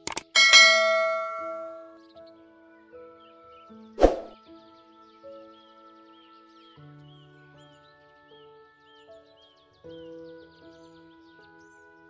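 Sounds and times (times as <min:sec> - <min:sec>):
notification bell chime: 0:00.2 - 0:01.9.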